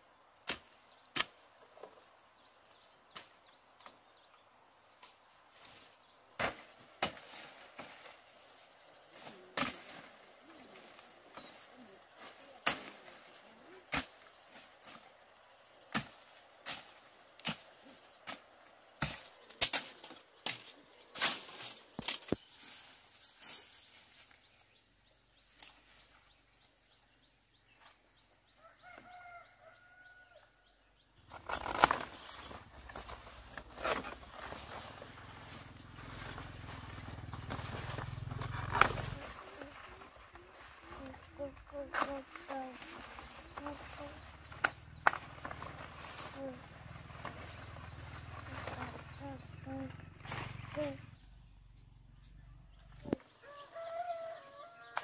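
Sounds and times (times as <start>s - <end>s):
netting and undergrowth rustling: 0.3s - 55.0s.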